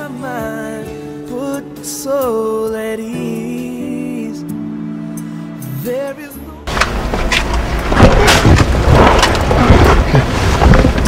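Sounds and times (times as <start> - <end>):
wind buffeting microphone: 6.8 - 11.0.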